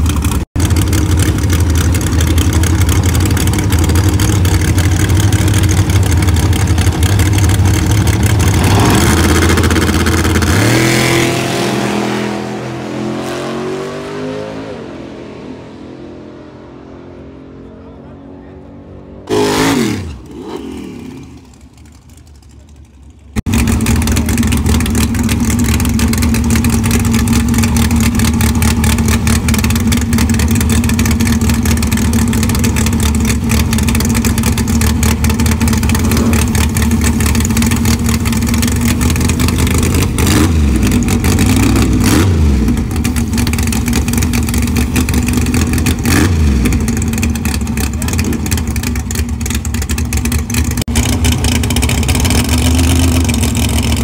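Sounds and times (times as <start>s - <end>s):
car engine idling loud: 0.0s - 11.5s, 21.4s - 54.0s
engine throttle blips: 0.0s - 54.0s.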